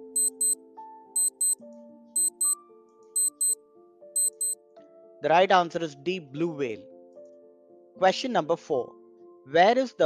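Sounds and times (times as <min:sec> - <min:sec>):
soft background music: 0:00.0 - 0:10.0
clock ticking: 0:00.2 - 0:00.6, 0:01.2 - 0:01.6, 0:02.2 - 0:02.6, 0:03.2 - 0:03.6, 0:04.2 - 0:04.6.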